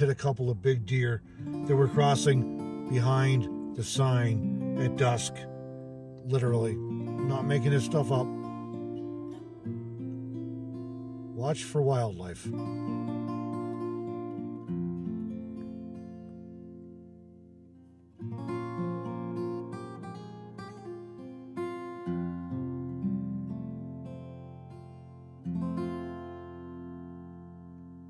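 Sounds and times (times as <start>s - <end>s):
acoustic guitar chords strummed: 0.0s - 28.0s.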